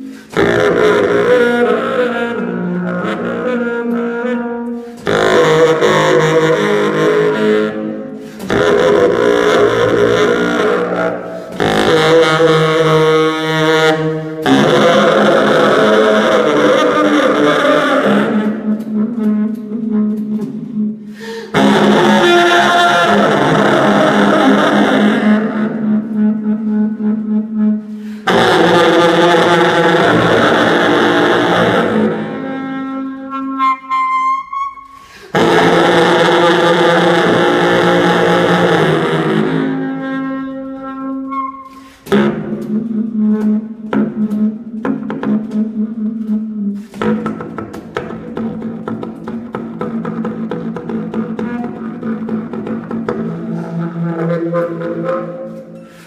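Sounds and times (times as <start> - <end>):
bass saxophone: 0.0 - 56.0.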